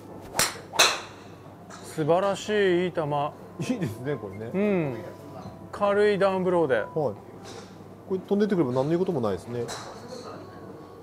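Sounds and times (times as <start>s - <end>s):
golf club striking ball: 0.2s - 1.8s.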